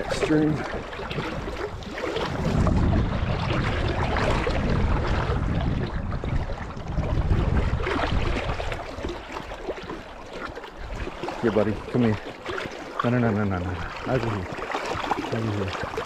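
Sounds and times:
wind noise on microphone: 0.0s - 9.7s
water splashing around wading legs: 0.0s - 16.0s.

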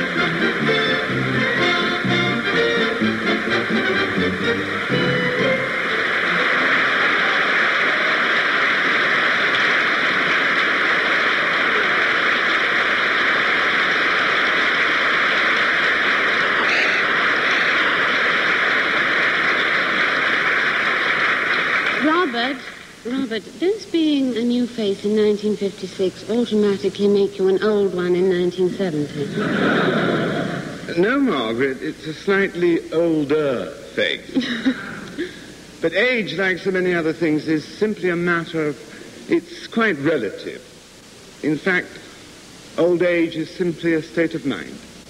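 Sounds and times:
play-on music: 0.0s - 7.2s
audience applauding: 0.0s - 23.0s.

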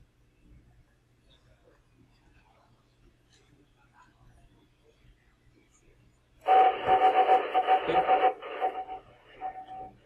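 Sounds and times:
radio hiss: 6.4s - 10.0s
pulsing data tone: 6.5s - 10.0s.

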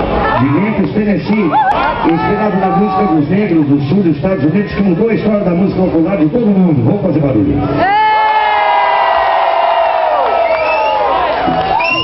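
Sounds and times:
crowd cheering: 0.0s - 3.7s, 7.7s - 12.0s.

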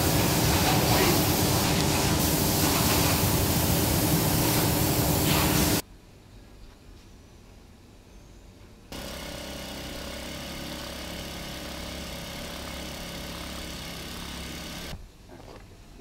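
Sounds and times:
factory machinery running: 0.0s - 5.8s, 9.0s - 15.0s.

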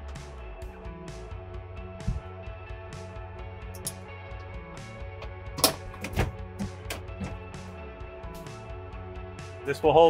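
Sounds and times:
background music: 0.0s - 10.0s
bunk board knocking and clattering: 5.2s - 7.5s.

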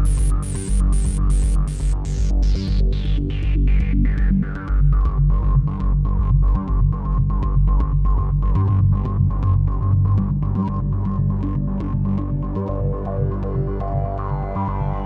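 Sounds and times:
low synth bass drone: 0.0s - 15.0s.

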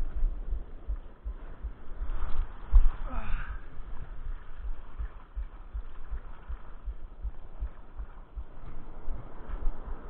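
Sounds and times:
low thumps: 0.0s - 10.0s
muffled breaking surf: 0.0s - 10.0s.

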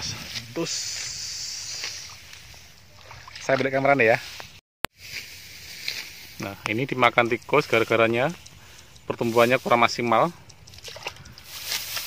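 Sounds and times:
man speaking: 6.4s - 8.4s, 9.1s - 10.4s.

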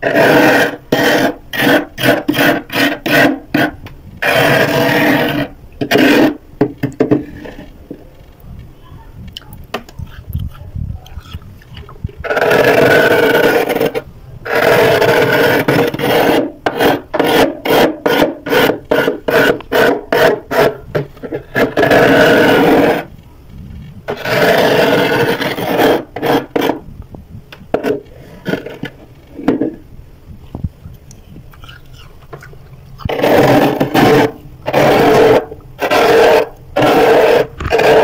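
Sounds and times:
metal spoon scraping frost: 24.1s - 26.8s, 31.6s - 38.0s.

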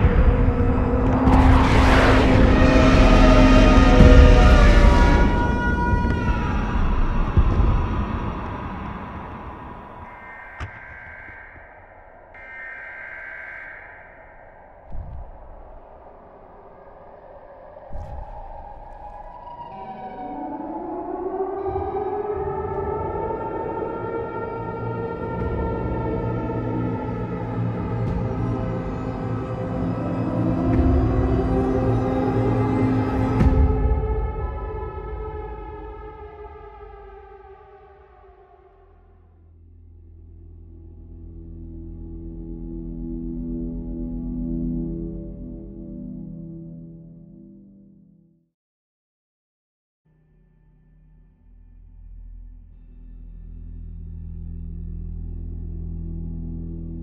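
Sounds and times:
deep low boom: 0.0s - 12.4s, 25.0s - 36.6s
loud hit: 0.0s - 16.0s
high eerie held tone: 0.0s - 33.6s.

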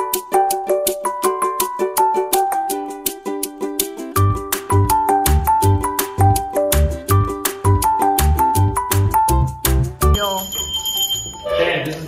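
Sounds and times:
hand bell ringing: 10.1s - 12.0s.

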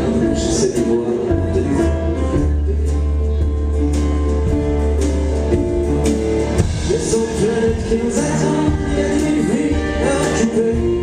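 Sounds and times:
steady low bass: 0.0s - 11.0s.

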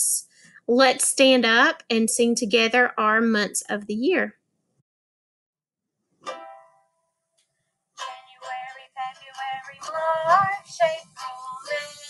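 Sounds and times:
plucked string chord: 6.2s - 7.0s
person singing: 8.0s - 12.0s.

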